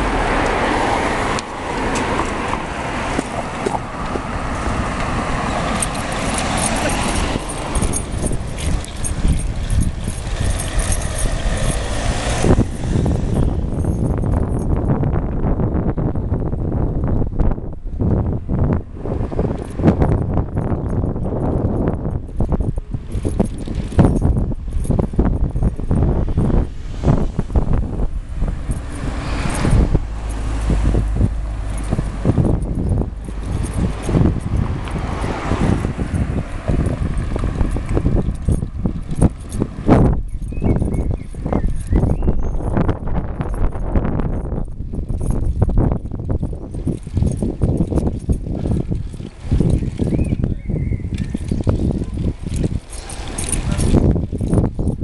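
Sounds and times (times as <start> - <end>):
bicycle knocking and rattling: 0.0 - 55.0
road rumble: 0.0 - 55.0
wind noise on microphone: 0.0 - 55.0.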